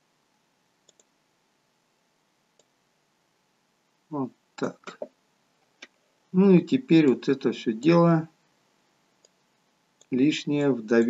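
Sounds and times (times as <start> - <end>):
computer mouse clicks: 0.8 - 1.1, 2.5 - 2.8, 9.2 - 9.4.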